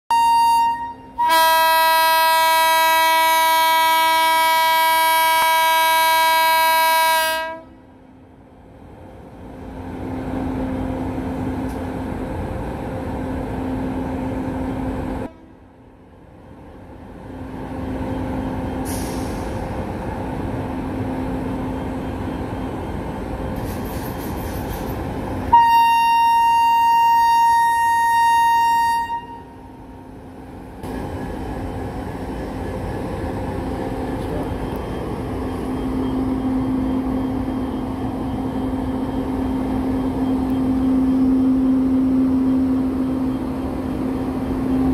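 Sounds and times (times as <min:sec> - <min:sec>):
locomotive horn blast: 0:00.1 - 0:07.9, 0:25.5 - 0:29.7
train rumbling: 0:00.1 - 0:44.9.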